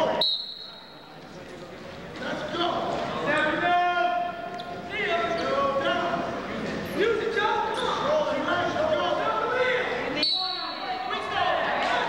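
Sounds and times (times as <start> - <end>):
hall background noise: 0.0 - 12.0
referee's whistle blast: 0.1 - 1.1, 10.2 - 11.0.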